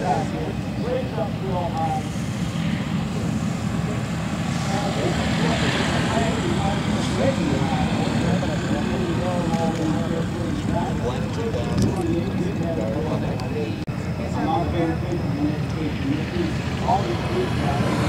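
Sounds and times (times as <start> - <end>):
people talking: 0.0 - 18.0
propeller aircraft engine running: 0.0 - 18.0.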